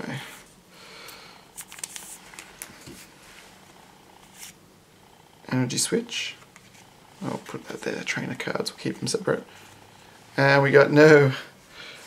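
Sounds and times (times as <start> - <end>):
cards sliding and rustling: 1.6 - 3.4, 4.2 - 4.6, 6.3 - 7.8.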